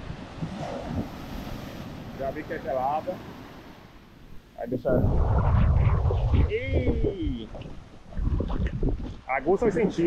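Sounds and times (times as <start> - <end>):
wind on microphone: 0.0 - 2.2, 4.7 - 10.0
ocean surf breaking on sand: 0.0 - 10.0.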